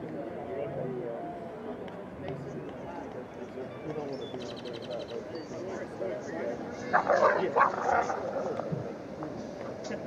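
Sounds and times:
distant chatter of voices: 0.0 - 10.0.

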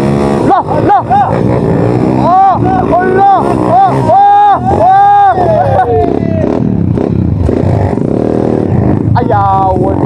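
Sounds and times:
off-road motorcycle engine: 0.0 - 10.0.

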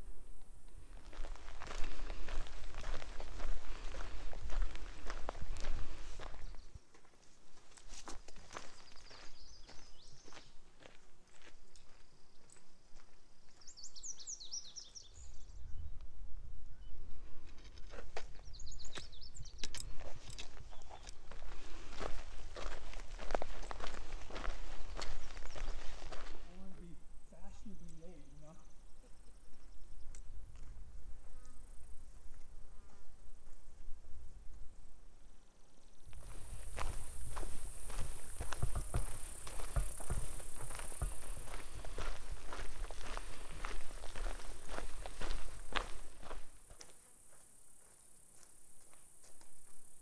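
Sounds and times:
footsteps on dirt trail: 0.0 - 15.4, 17.0 - 35.1, 35.9 - 50.0
bird chirping: 8.5 - 10.6, 13.4 - 16.0, 17.7 - 21.3, 23.5 - 30.4.

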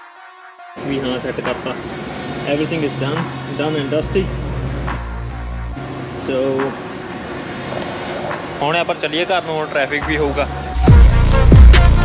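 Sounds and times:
steady background noise: 0.8 - 10.0.

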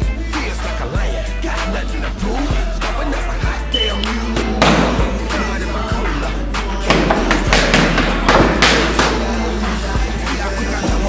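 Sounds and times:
background music: 0.0 - 11.0
boxing gloves hitting mitts: 4.4 - 5.2, 6.8 - 9.4.

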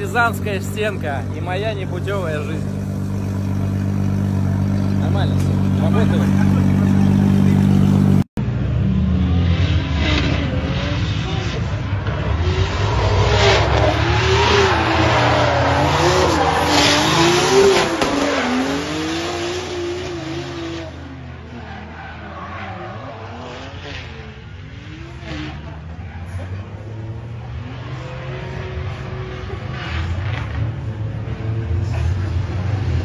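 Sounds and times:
car engine revving: 0.0 - 33.0.

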